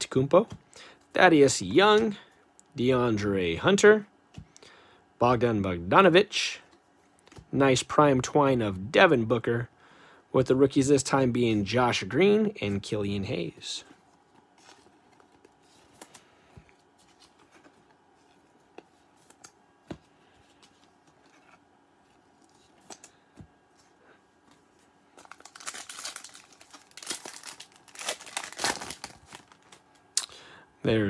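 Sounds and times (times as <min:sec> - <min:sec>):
wrapper being torn and crinkled: 0:25.2 - 0:29.8.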